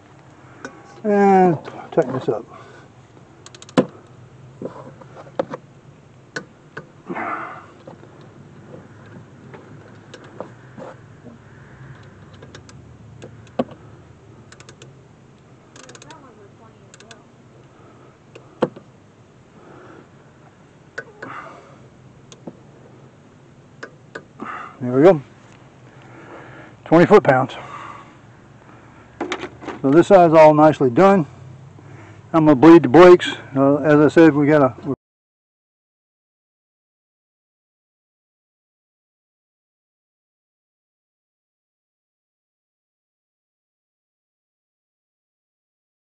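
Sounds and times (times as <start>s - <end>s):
ratchet and wrench clicking: 3.4s - 3.9s, 14.5s - 14.9s, 15.7s - 16.2s, 16.9s - 17.2s.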